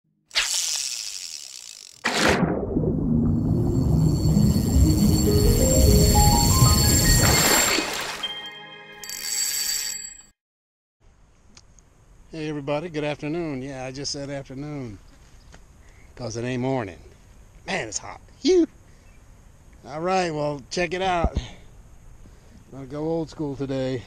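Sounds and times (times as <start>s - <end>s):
sharp sound effect hit: 2.0s - 6.6s
intro music with heavy bass: 2.6s - 7.0s.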